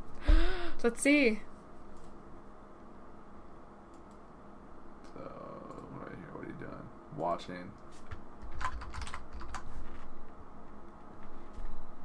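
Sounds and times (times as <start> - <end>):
computer keyboard typing: 8.4 - 10.1.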